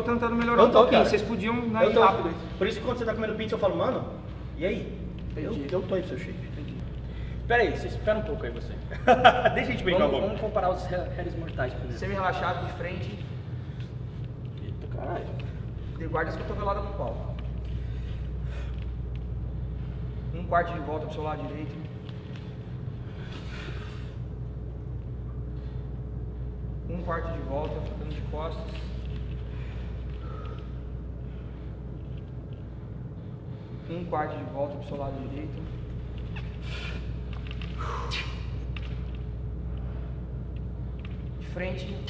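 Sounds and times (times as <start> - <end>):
low room rumble and hum: 0.0 - 42.0.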